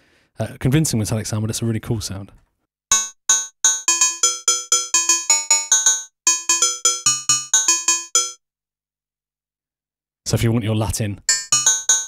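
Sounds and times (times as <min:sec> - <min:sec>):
synthesizer bell-like percussion notes: 0:02.9 - 0:08.4, 0:11.3 - 0:12.0.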